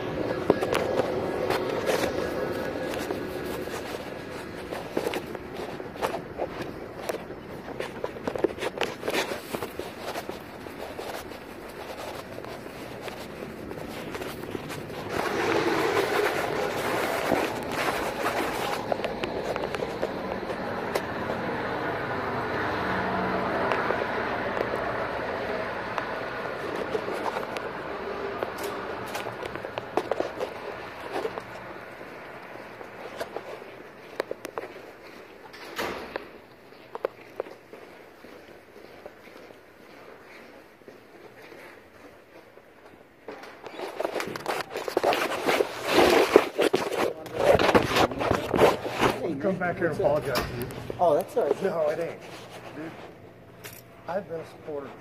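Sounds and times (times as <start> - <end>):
footsteps: 0.0 - 55.0.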